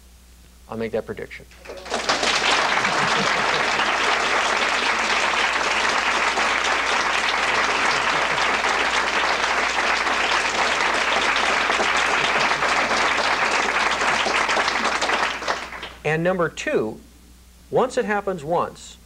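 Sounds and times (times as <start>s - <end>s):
audience applauding: 1.6s - 16.0s.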